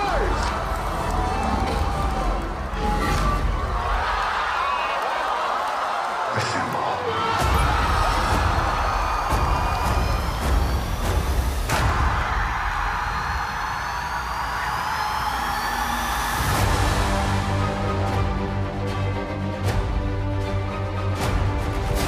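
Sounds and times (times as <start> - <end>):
movie trailer music: 0.0 - 4.6, 7.4 - 13.4, 14.4 - 22.0
thin rising whistles: 13.5 - 16.5.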